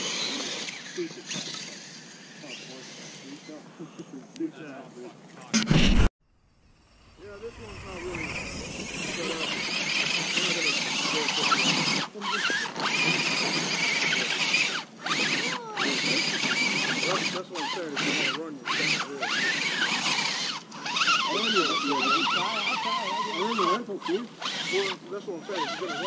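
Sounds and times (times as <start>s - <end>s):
electric motor whining: 0.0s - 3.6s, 5.6s - 26.0s.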